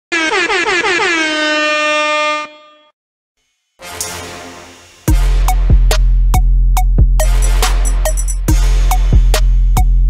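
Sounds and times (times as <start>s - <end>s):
horn-like blast swooping: 0.2s - 6.3s, 7.2s - 9.3s
music: 3.4s - 10.0s.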